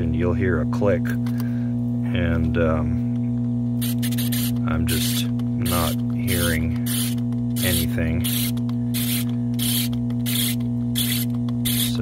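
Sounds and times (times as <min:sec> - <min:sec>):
electrical mains hum: 0:00.0 - 0:12.0
timer dial rasping: 0:03.8 - 0:12.0.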